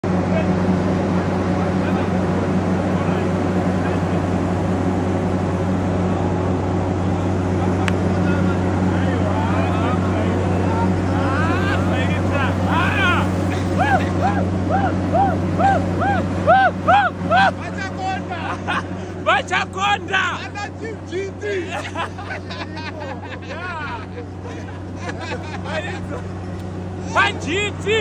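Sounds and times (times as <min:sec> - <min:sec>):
drilling rig humming: 0:00.0 - 0:28.0
people cheering and calling out: 0:05.9 - 0:28.0.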